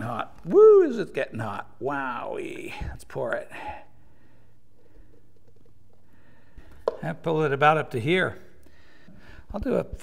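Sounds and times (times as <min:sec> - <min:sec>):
cup knocking on workbench: 0:06.7 - 0:07.0.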